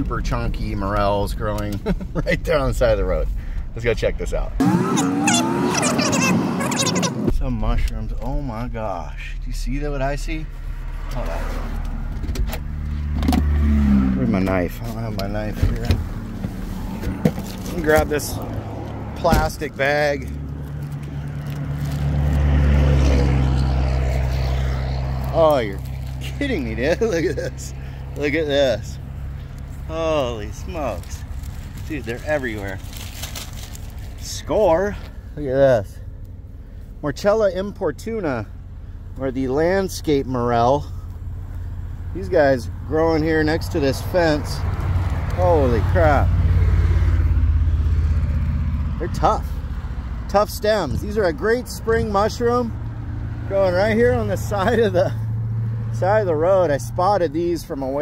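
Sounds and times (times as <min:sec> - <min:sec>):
vehicle passing on road: 0:04.3 - 0:58.0.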